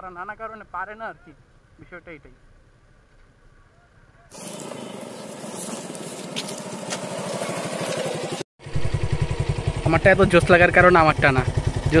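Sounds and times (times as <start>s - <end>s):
motorcycle engine idling up close: 4.3s - 12.0s
motorcycle engine riding on dirt: 4.3s - 12.0s.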